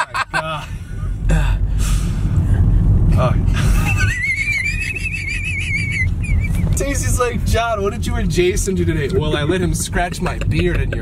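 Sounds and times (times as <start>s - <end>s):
car cabin rumble: 0.0s - 11.0s.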